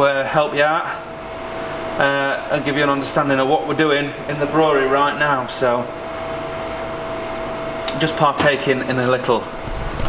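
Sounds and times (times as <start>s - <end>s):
machinery humming with whine: 0.0s - 10.0s.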